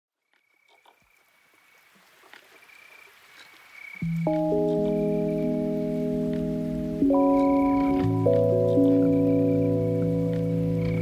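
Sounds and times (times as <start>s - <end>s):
faint water ambience: 0.2s - 11.0s
small drips and clicks: 0.3s - 11.0s.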